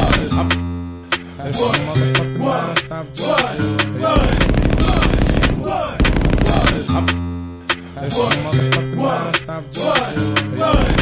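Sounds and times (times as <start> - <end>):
hip hop soundtrack: 0.0 - 11.0
machine-gun effect: 4.2 - 6.9.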